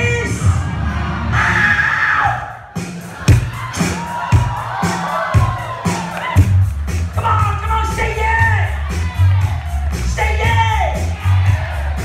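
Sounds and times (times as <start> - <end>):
audience cheering and screaming: 0.0 - 12.0
loud music with bass beat: 0.0 - 12.0.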